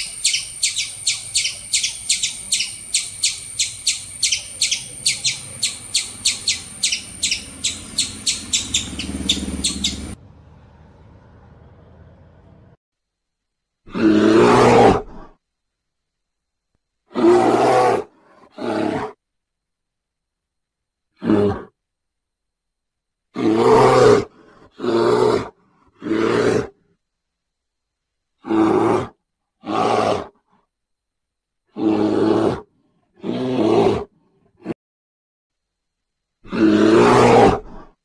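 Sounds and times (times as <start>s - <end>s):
low animal roars: 13.9s - 15.4s, 31.7s - 34.8s, 36.4s - 38.0s.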